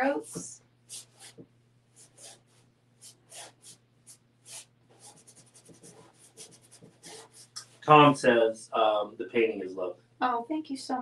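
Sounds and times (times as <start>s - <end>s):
paintbrush swishing on canvas: 0.3s - 1.4s, 2.0s - 7.8s.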